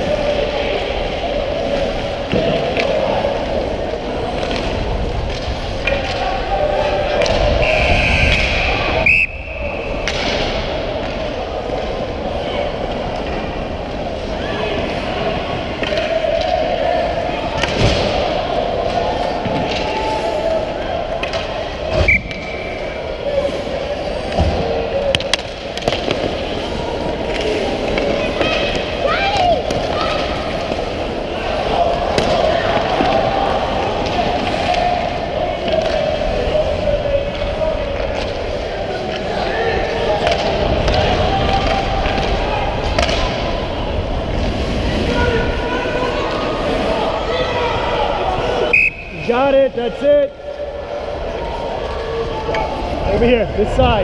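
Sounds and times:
hockey sticks and puck clacking: 1.7s - 9.0s, 9.9s - 14.3s, 15.7s - 47.0s.

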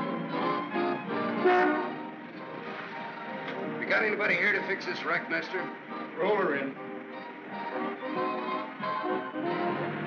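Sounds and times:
film score music: 0.0s - 10.0s
car horn: 1.2s - 2.1s.

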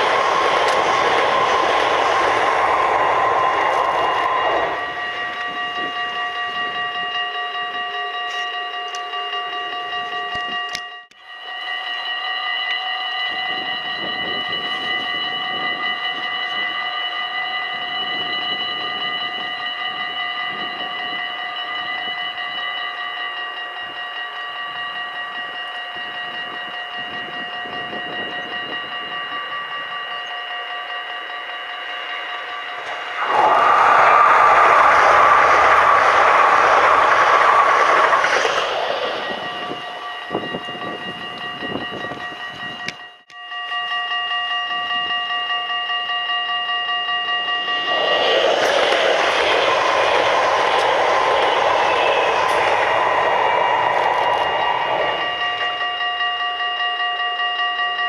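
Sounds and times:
high multi-tone whine: 0.0s - 9.1s, 25.2s - 43.4s, 46.6s - 56.8s
train wheels rumbling on bridge: 0.0s - 10.7s, 13.3s - 43.0s, 46.5s - 57.0s.

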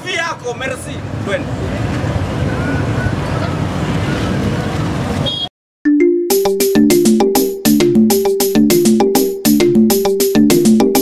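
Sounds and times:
road traffic rumble: 0.0s - 5.5s.

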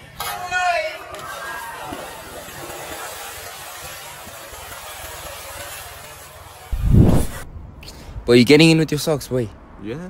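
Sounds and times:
loud low thump: 6.8s - 7.4s.

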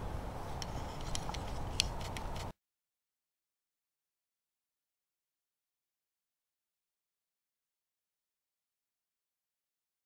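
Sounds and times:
low outdoor rumble: 0.0s - 2.5s.

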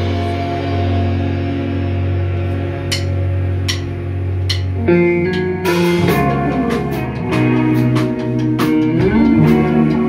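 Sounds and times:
electric guitar and bass chord: 0.0s - 10.0s
cymbal hits: 2.8s - 4.8s.

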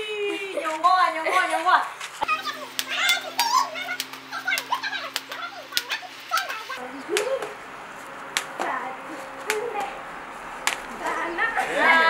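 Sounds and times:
excited voices calling out: 0.0s - 7.7s, 10.9s - 12.0s.

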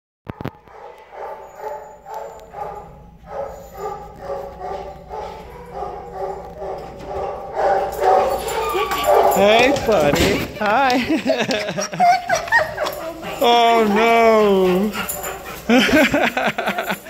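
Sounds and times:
muffled dog barking: 0.3s - 10.0s.

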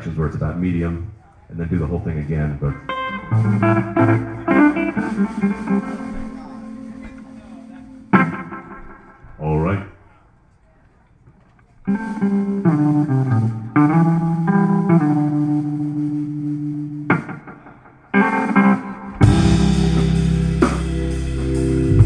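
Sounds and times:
drums: 0.0s - 22.0s
bass notes: 1.5s - 9.6s, 11.9s - 17.4s, 18.4s - 22.0s
live band playing: 1.6s - 9.2s, 11.9s - 22.0s
electric guitar notes: 1.8s - 9.4s, 11.9s - 22.0s.

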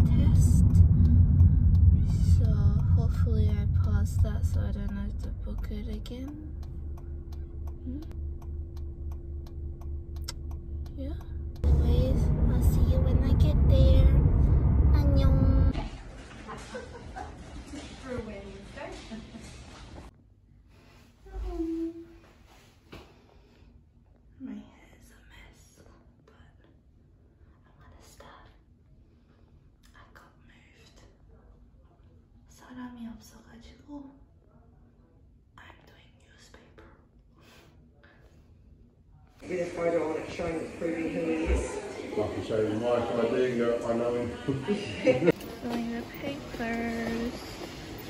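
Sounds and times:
woman talking: 0.0s - 1.1s, 2.0s - 6.5s, 11.0s - 15.9s, 17.7s - 19.5s, 44.5s - 47.7s
car interior rumble: 0.0s - 15.8s
low steady hum: 0.0s - 48.0s
woman whispering: 7.8s - 8.2s, 24.4s - 26.8s, 27.6s - 28.6s, 29.8s - 31.3s, 32.5s - 34.2s, 35.6s - 37.1s.

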